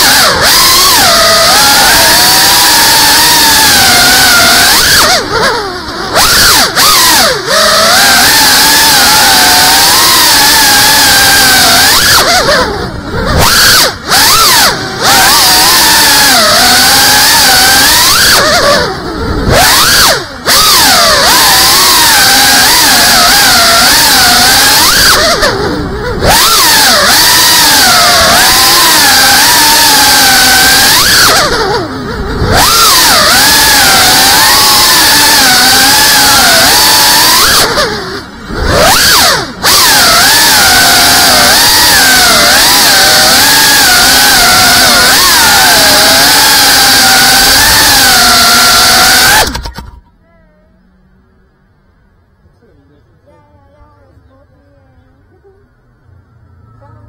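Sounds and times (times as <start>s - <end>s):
drone motors whining: 0.0s - 51.7s.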